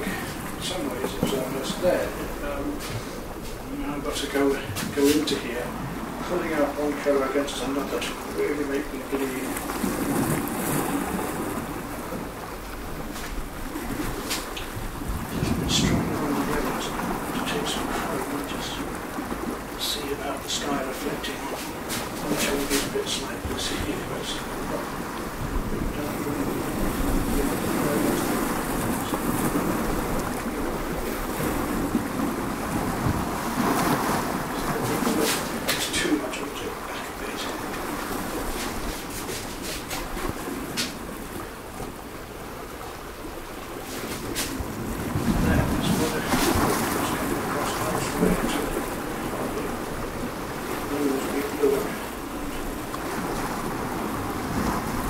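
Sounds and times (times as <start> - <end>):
waves breaking: 0.0 - 55.0
wind: 0.0 - 55.0.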